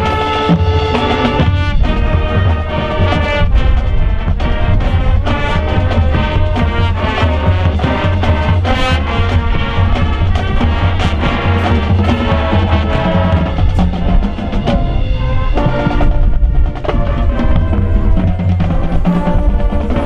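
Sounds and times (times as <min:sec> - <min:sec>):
marching band playing: 0:00.0 - 0:20.0
percussion strikes: 0:00.0 - 0:20.0.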